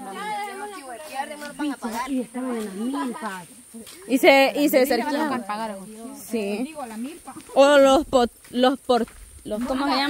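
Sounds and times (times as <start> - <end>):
faint high-pitched hiss: 0.0 - 10.0
women talking: 0.0 - 10.0.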